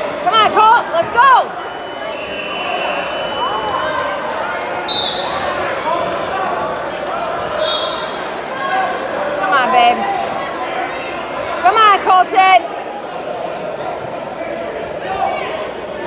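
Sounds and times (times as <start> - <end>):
spectators chatter and shouts: 0.0 - 16.0.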